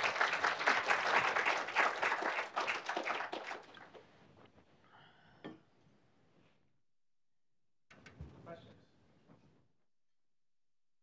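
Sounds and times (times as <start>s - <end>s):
audience applauding: 0.0s - 4.1s.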